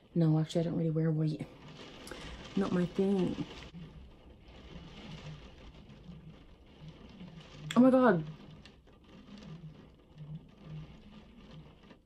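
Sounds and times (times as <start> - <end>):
faint rain pattering: 0.0 - 12.0
soft low hums: 0.0 - 12.0.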